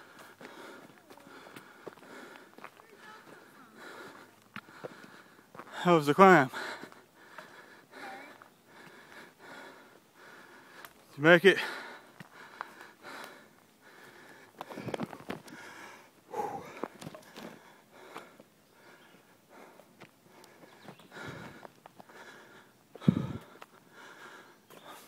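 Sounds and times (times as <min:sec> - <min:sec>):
people breathing hard: 0:00.0 - 0:25.0.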